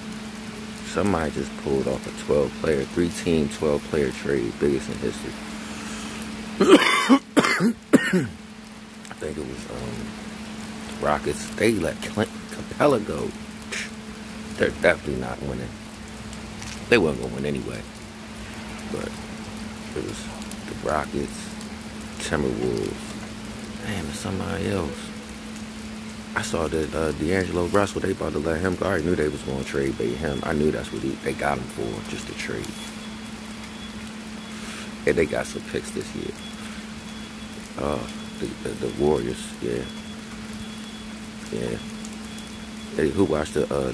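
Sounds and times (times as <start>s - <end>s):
background hiss: 0.0s - 43.9s
low machine hum: 0.0s - 43.9s
man coughing: 6.6s - 8.4s.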